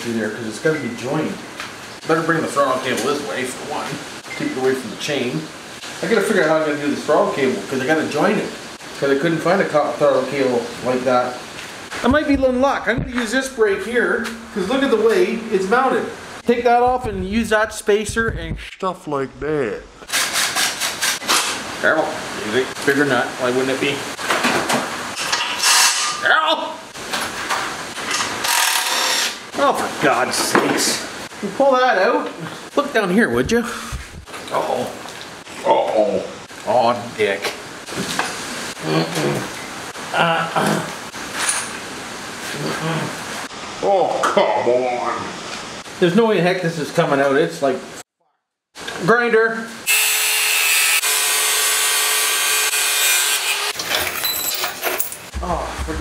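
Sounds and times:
knocks and rattles: 0:12.0 - 0:13.6, 0:16.4 - 0:18.8, 0:33.3 - 0:34.4, 0:53.8 - 0:56.0
angle grinder cutting metal: 0:49.9 - 0:53.8
metal tools clattering: 0:53.8 - 0:55.4.

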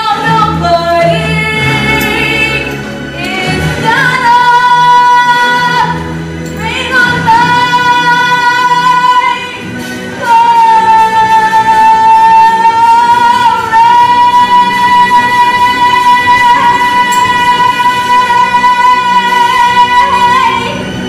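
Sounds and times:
musical accompaniment: 0:00.0 - 0:21.0.

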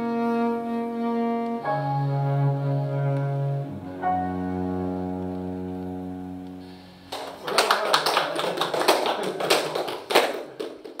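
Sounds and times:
held music chord: 0:00.0 - 0:07.2
audience applauding: 0:07.1 - 0:11.0.

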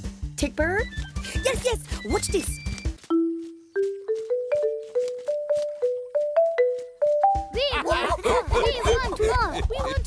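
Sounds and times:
marimba-like mallet notes: 0:03.1 - 0:07.7.

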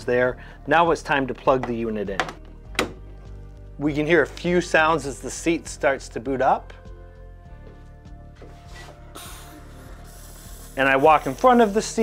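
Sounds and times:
soft background music: 0:00.0 - 0:12.0
bidet seat hissing: 0:08.6 - 0:12.0.

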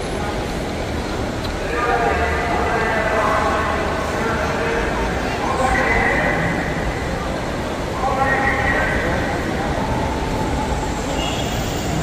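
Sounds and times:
crowd noise: 0:00.0 - 0:12.0
traffic rumble: 0:00.0 - 0:12.0.

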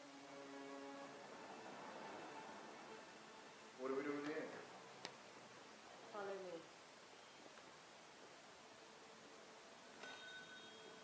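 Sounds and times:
shop door bell ringing: 0:10.0 - 0:11.0.

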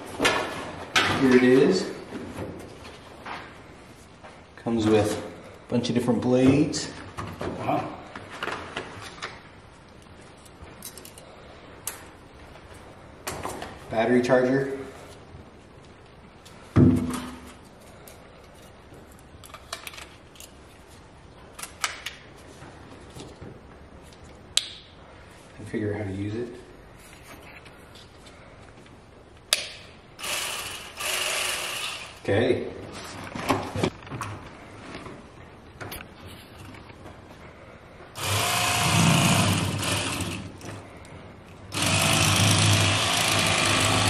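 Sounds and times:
electric fillet knife motor running: 0:30.2 - 0:32.1, 0:38.2 - 0:40.4, 0:41.8 - 0:44.0.

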